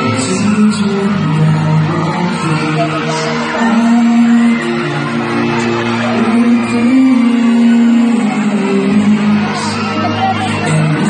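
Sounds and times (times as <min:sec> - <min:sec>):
guitar accompaniment: 0:00.0 - 0:11.0
man singing long notes: 0:00.0 - 0:11.0.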